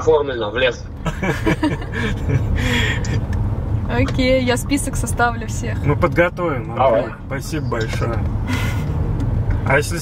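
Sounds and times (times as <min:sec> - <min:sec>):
low rumble inside a car: 0:00.0 - 0:10.0.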